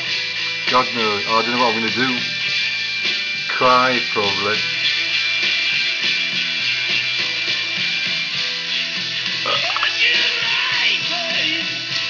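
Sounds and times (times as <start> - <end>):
background guitar music: 0.0 - 12.0.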